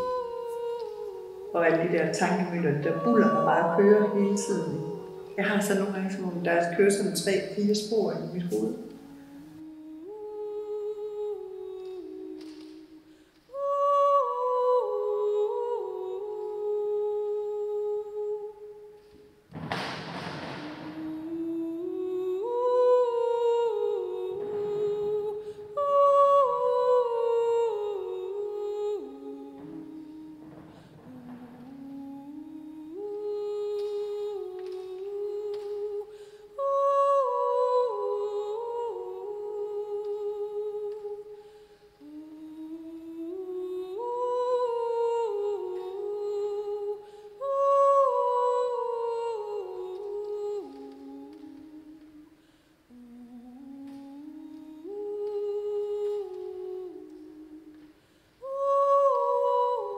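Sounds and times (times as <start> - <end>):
person humming: 0.0 - 7.0, 7.6 - 18.9, 20.5 - 41.4, 42.0 - 59.9.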